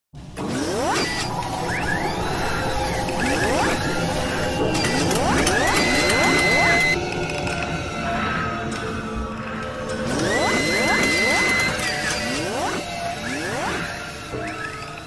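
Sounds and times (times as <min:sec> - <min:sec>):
machine-like drone: 0:00.3 - 0:15.0
mechanical servo whirs: 0:00.4 - 0:07.0, 0:10.0 - 0:15.0
held high whine: 0:00.4 - 0:15.0.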